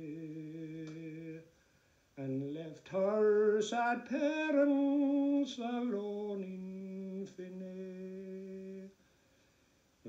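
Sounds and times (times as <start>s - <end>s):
man singing a slow ballad: 0.0s - 1.6s, 2.2s - 9.0s.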